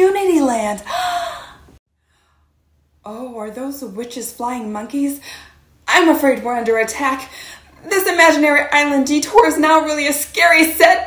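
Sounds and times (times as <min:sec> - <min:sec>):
woman's voice: 0:00.0 - 0:01.5, 0:03.0 - 0:11.0.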